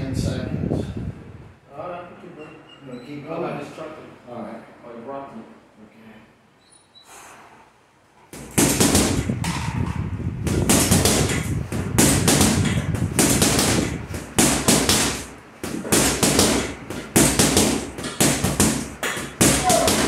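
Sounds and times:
punches smacking rapidly: 0:08.3 - 0:09.5, 0:10.4 - 0:20.0.

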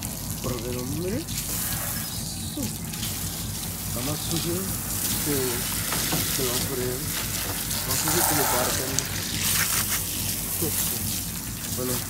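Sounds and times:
garden hose spraying on metal: 0:00.0 - 0:12.0.

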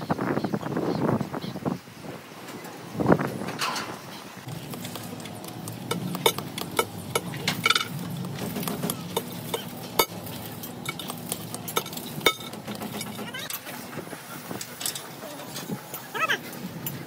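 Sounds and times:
steady low hum: 0:04.4 - 0:15.9.

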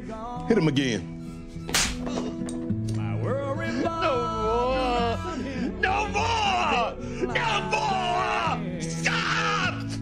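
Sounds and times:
background music with held notes: 0:00.0 - 0:10.0
sharp crack of a blow: 0:01.7 - 0:02.1.

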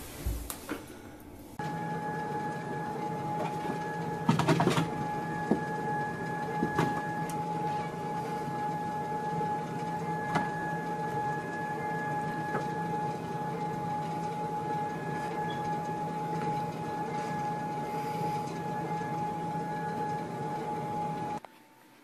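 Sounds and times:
treadmill motor whine: 0:00.0 - 0:22.0.

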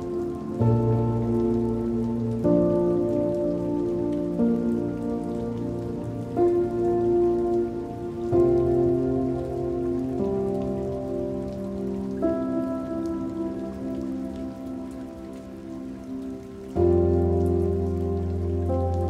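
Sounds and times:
rain falling on water: 0:00.0 - 0:19.0
soft relaxation music: 0:00.0 - 0:19.0.

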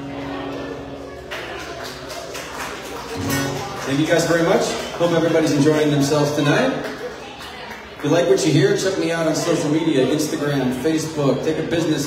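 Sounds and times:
acoustic guitar strumming: 0:03.2 - 0:06.2
man's voice: 0:03.8 - 0:06.8, 0:08.0 - 0:12.0.

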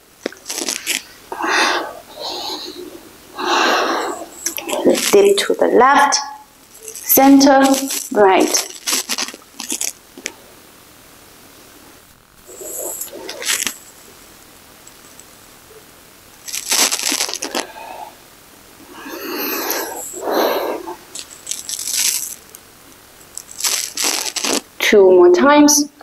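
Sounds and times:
person breathing through mouth: 0:01.3 - 0:05.1, 0:12.5 - 0:13.7, 0:17.4 - 0:18.2, 0:18.8 - 0:21.0.

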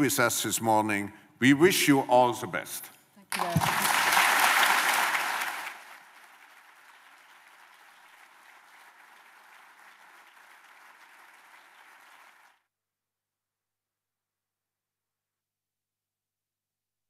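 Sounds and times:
audience applauding: 0:03.3 - 0:12.6.

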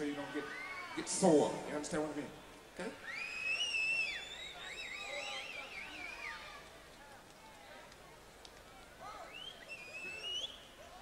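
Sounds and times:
audience whistling shrilly: 0:03.0 - 0:06.5, 0:09.2 - 0:10.7.

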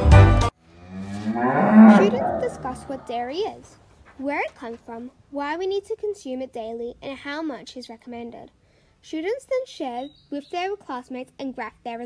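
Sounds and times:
cow mooing: 0:00.7 - 0:03.2.

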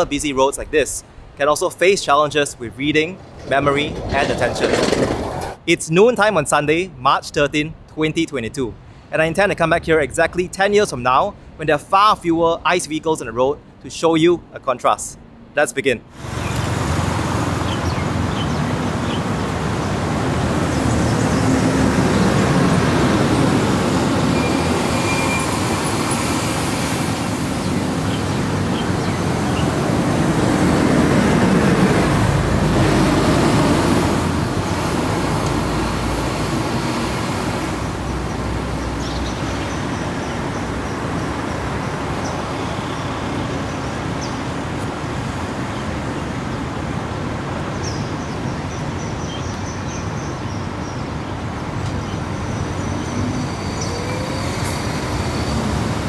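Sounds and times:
road traffic passing: 0:00.0 - 0:05.8, 0:15.2 - 0:56.0.

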